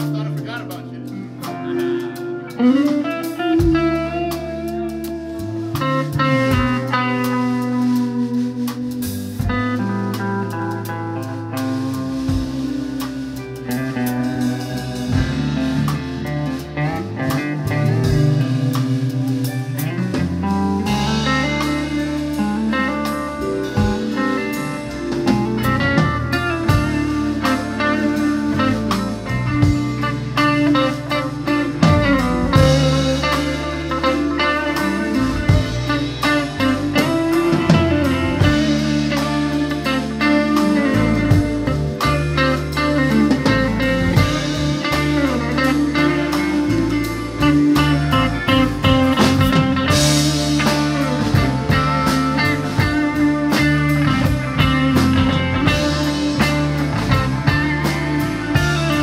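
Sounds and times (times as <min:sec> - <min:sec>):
bass guitar: 0:00.0 - 0:59.0
drum kit: 0:00.0 - 0:59.0
electric guitar: 0:00.0 - 0:59.0.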